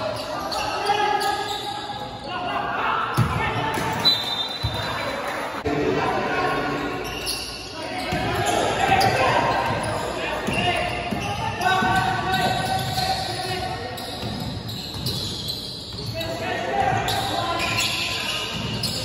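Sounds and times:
players calling out: 0.0 - 19.0.

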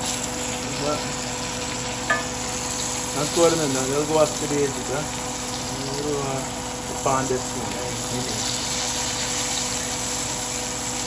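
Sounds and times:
fish frying in hot oil: 0.0 - 11.0.

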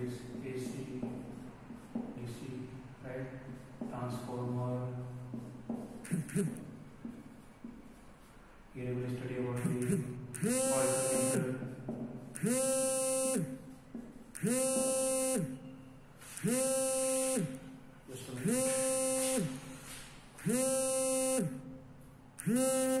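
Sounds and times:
sliding electronic note: 9.6 - 11.6, 14.4 - 21.7.

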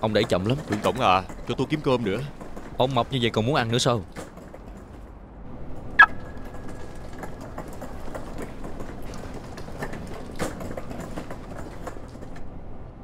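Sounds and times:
wheelchair wheels rolling on concrete: 0.0 - 12.5.

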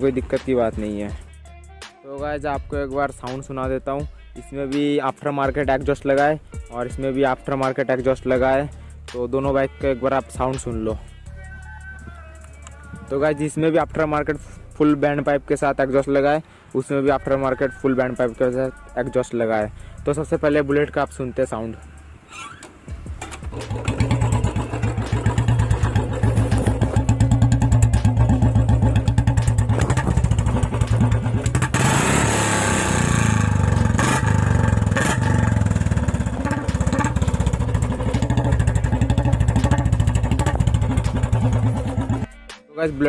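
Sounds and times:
motorcycle engine running: 23.2 - 42.3.

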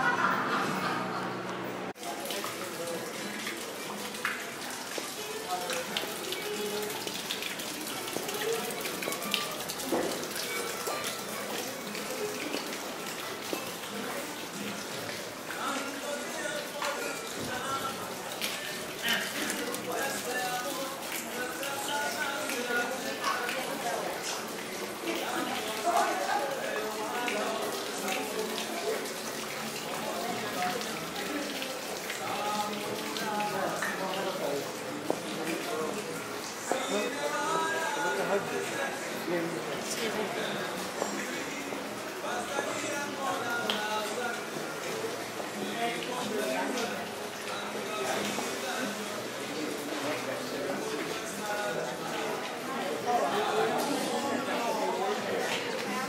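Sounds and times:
indistinct chatter of people: 0.0 - 56.0
murmur of voices: 0.0 - 56.0
fountain water splashing: 1.9 - 56.0.

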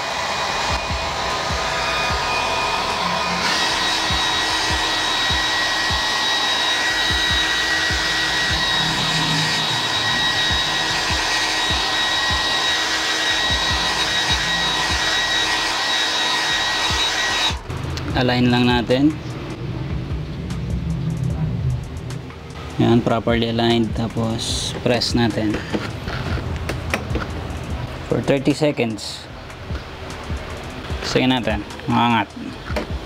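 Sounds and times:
airflow buffeting microphone: 0.0 - 12.7, 17.6 - 33.0
hair dryer blowing: 0.0 - 19.3, 23.7 - 27.8, 30.3 - 33.0.

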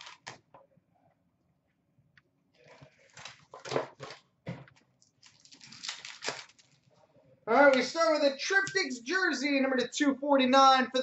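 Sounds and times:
wrapper tearing: 5.0 - 6.9.

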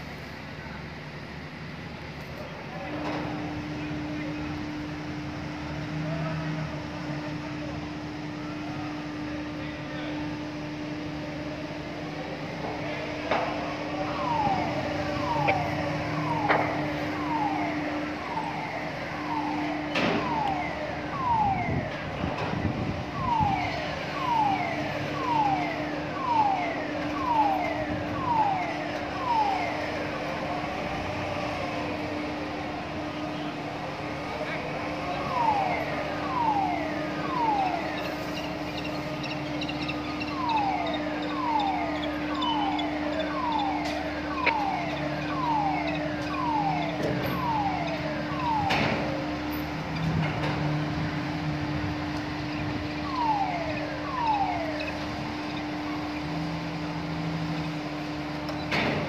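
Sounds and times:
low machinery hum: 0.0 - 59.0.

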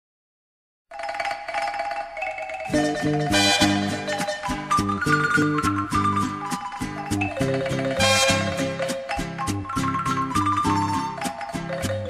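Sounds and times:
love song instrumental intro: 2.7 - 12.0.

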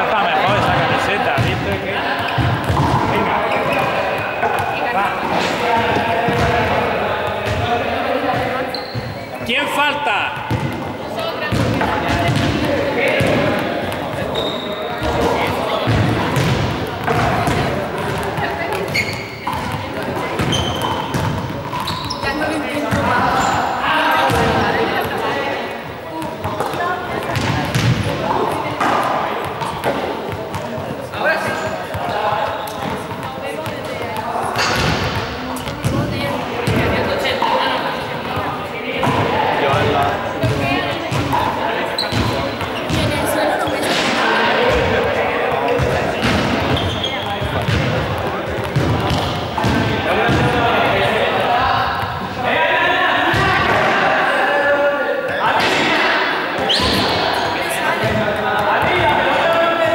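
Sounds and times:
background chatter of voices: 0.0 - 59.9.

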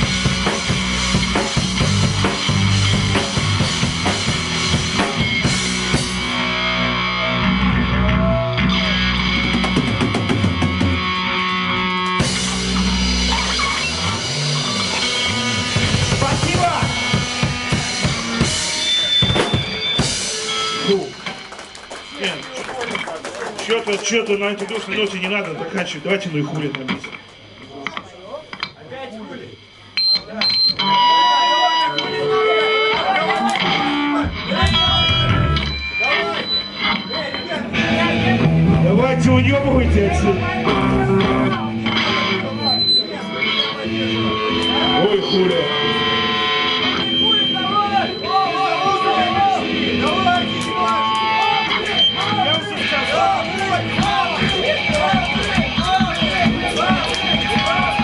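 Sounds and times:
live rock band playing: 0.0 - 23.6, 29.6 - 58.0
voices singing: 51.3 - 58.0.

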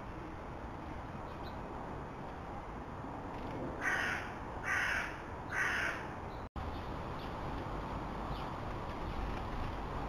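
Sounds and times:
crow cawing: 3.8 - 6.1.

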